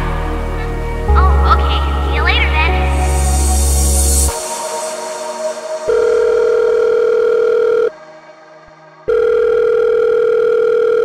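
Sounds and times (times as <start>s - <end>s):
steady electronic tones: 0.0s - 8.0s
musical tail: 0.0s - 9.3s.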